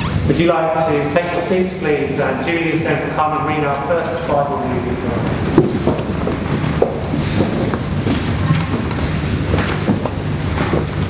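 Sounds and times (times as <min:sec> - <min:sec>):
low microphone rumble: 0:00.0 - 0:11.0
footsteps on stone floor: 0:04.9 - 0:11.0
soft knocks: 0:04.9 - 0:11.0.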